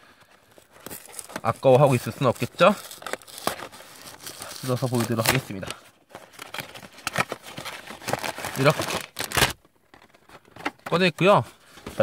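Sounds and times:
plastic bag crinkling: 0.4s - 9.6s
cardboard box tearing: 0.8s - 5.7s, 6.3s - 9.6s.

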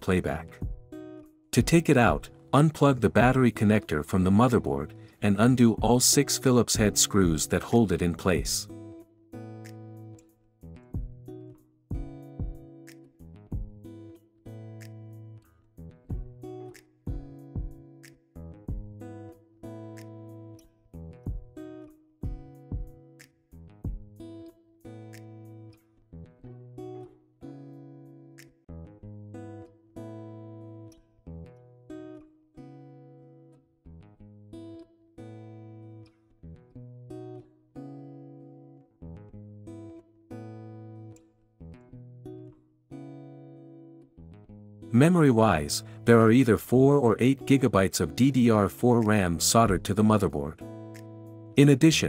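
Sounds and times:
guitar plucking and strumming: 0.0s - 52.0s.

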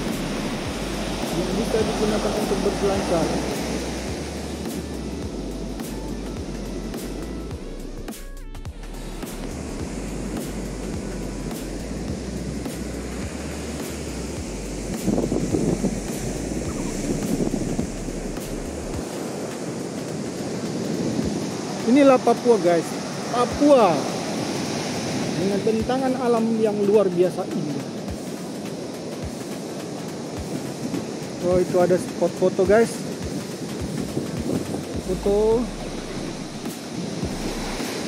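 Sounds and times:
surf breaking on beach: 0.0s - 6.2s, 9.0s - 38.0s
wind rumbling on microphone: 0.0s - 8.0s, 8.7s - 38.0s.

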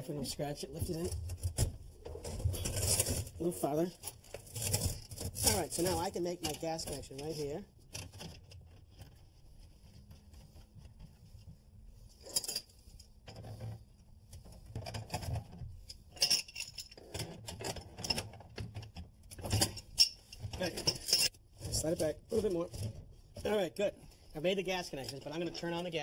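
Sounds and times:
tools clinking on metal fittings: 15.9s - 18.3s, 19.3s - 21.4s.

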